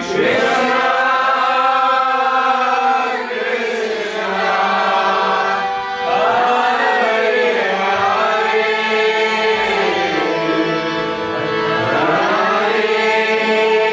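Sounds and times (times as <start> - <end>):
group of voices chanting: 0.0 - 10.9.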